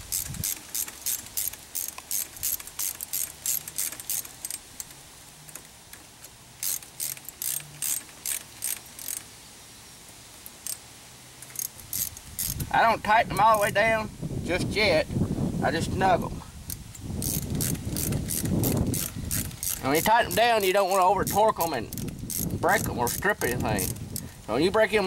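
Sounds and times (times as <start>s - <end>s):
ratcheting hand driver clicking: 0.0s - 9.3s, 11.4s - 12.7s, 16.7s - 24.3s.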